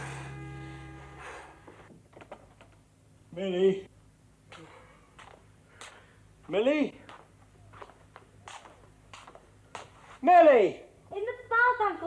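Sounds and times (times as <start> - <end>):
low steady hum: 0.0 - 9.7
faint soft footsteps: 4.5 - 10.2.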